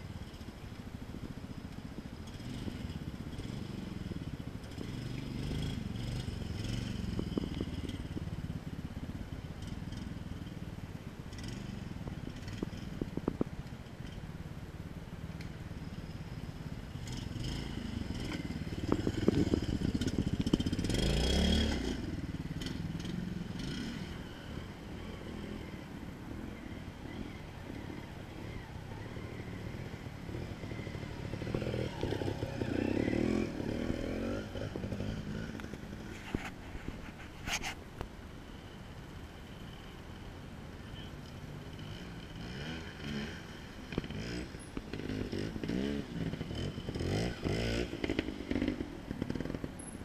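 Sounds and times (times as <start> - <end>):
motorcycle engine idling and revving: 0.0 - 50.0.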